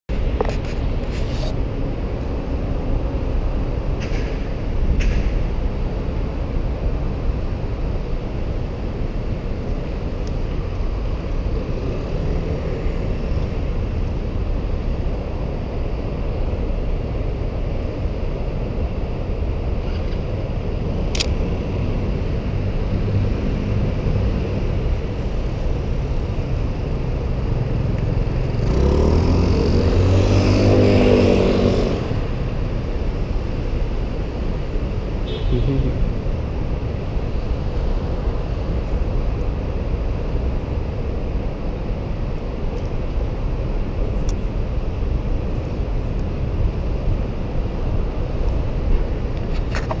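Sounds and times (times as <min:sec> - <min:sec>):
low rumble of street traffic: 0:00.1 - 0:50.0
vehicle engine passing close: 0:27.2 - 0:33.3.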